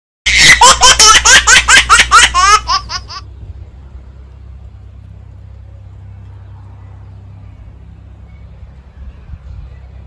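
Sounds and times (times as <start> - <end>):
baby squealing: 0.3 - 1.0
baby laughing: 0.3 - 3.2.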